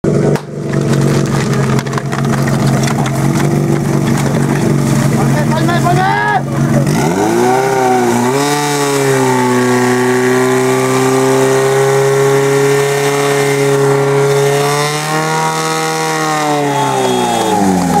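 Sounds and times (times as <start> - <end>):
pump engine running at high revs: 0.0 - 18.0.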